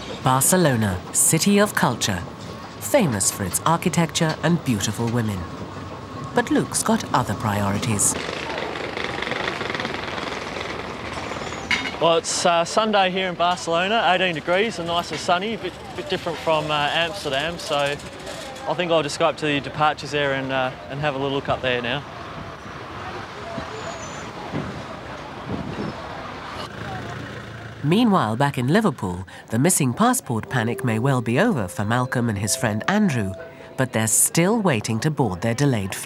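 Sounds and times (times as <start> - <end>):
traffic: 0.0 - 36.0.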